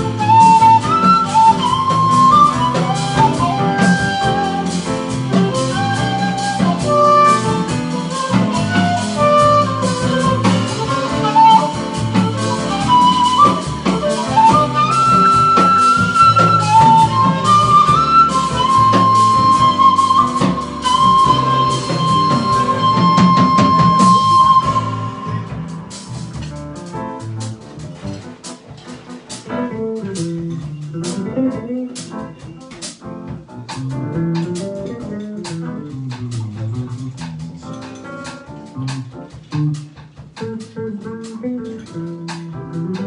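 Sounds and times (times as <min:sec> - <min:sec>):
piano bass and drums: 0:00.0 - 0:43.0
shakuhachi jazz melody: 0:00.0 - 0:43.0.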